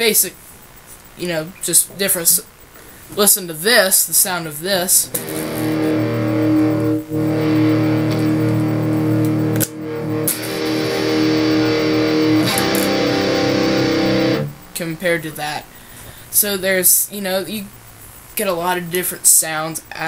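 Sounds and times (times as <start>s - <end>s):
electric guitar chords ringing: 5.1s - 14.8s.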